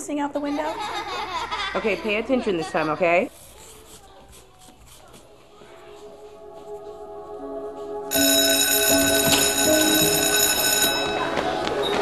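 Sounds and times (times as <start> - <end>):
electric school bell ringing: 8.1 - 12.0.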